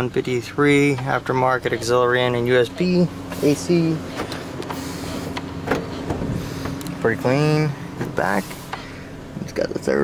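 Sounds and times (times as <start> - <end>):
car engine hum: 0.0 - 10.0.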